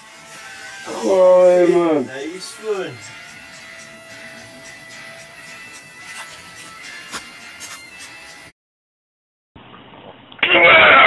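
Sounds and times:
quiet background music: 0.0s - 8.4s.

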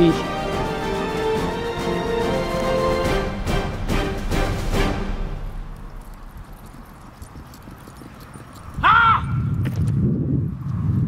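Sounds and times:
loud high-pitched shout: 8.8s - 9.4s.

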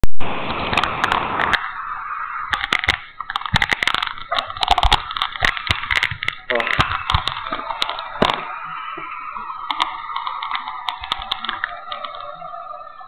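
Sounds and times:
sharp pop: 2.5s - 12.3s.

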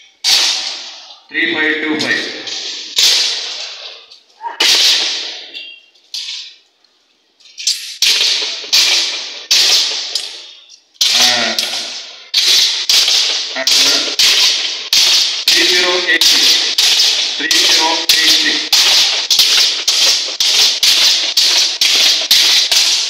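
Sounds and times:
swords clashing on metal shields: 0.2s - 1.0s, 2.9s - 6.5s, 7.6s - 23.0s.

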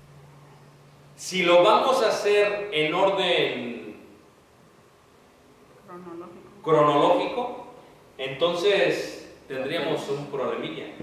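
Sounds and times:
faint steady hiss: 0.0s - 11.0s
person speaking: 9.3s - 11.0s.

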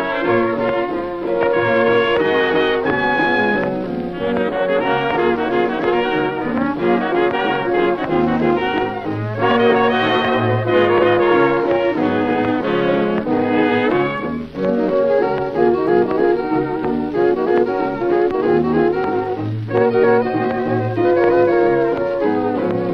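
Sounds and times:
jazz dance orchestra playing: 0.0s - 22.9s.

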